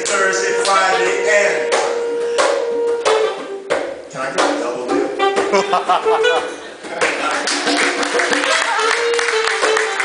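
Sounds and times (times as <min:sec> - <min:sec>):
saxophone playing: 0:00.0 - 0:06.8, 0:07.7 - 0:10.0.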